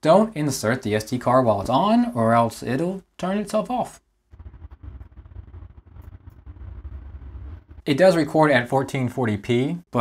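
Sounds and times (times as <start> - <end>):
low uneven rumble: 4.3 - 7.9.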